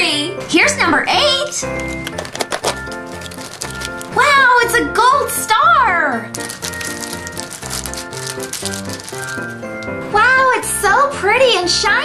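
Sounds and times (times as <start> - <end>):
plastic wrapper crinkling: 1.8 - 4.2, 6.3 - 10.1.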